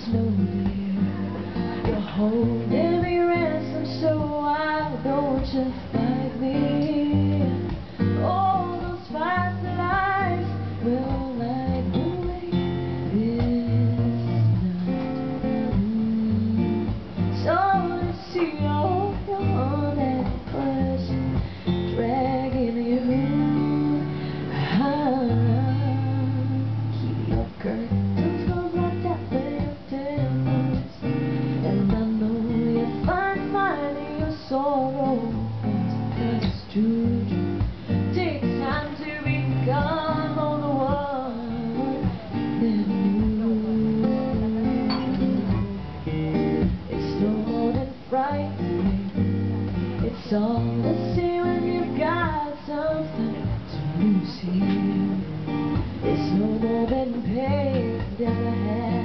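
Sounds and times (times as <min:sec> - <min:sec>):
strummed acoustic guitar: 0:00.0 - 0:59.0
woman singing: 0:00.0 - 0:59.0.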